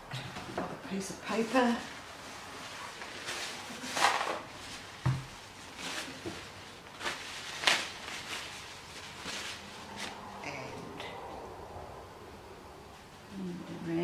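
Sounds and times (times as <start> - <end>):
handling rustles: 2.6 - 10.2.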